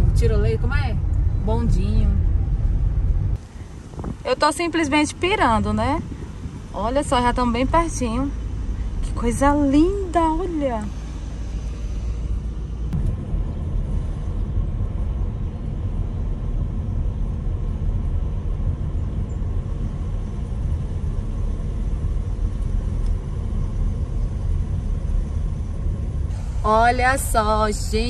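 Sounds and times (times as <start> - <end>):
car interior road rumble: 0.0 - 28.0.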